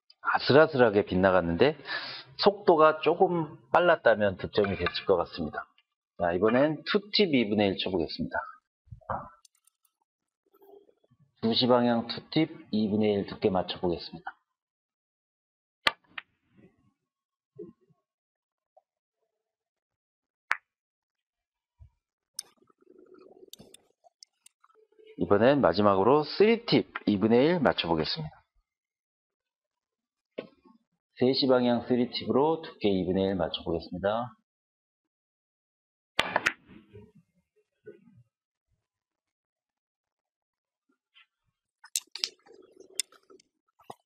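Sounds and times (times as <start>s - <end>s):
billiard balls clicking: 41.9s - 43.4s.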